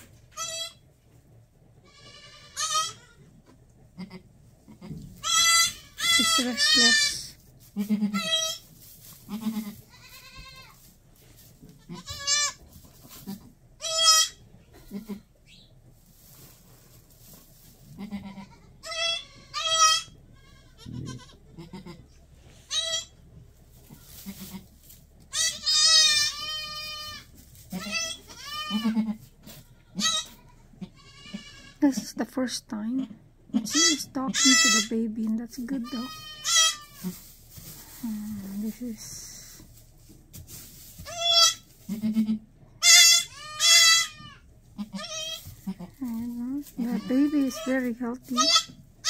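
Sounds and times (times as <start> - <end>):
goats bleating: 1.8 - 3.2, 4.0 - 8.6, 9.3 - 10.8, 13.2 - 15.3, 18.0 - 22.1, 23.9 - 31.8, 33.6 - 34.9, 35.8 - 37.2, 41.1 - 48.8.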